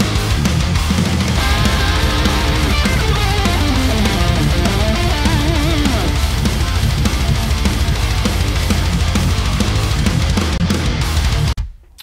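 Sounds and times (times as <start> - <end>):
distorted electric guitars: 0.0 - 11.6
fast kick drum pattern: 1.4 - 10.0
bending lead guitar melody: 1.4 - 11.2.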